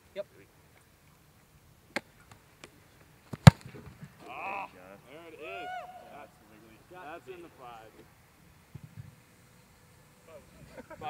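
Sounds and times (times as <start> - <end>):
foot kicking football thud: 3.3 - 4.1
man's drawn-out exclamation: 4.2 - 6.4
man calling: 4.2 - 8.0.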